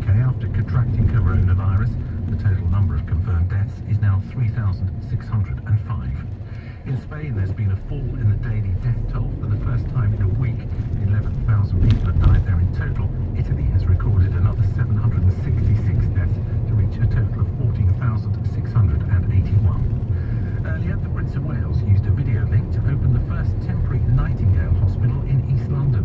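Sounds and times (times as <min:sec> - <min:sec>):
car interior rumble: 0:00.0 - 0:26.0
radio news voice: 0:00.0 - 0:26.0.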